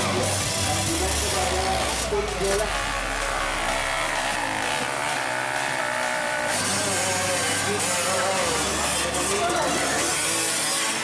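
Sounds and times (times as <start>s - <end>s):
dirt bike engine revving: 0.0s - 11.0s.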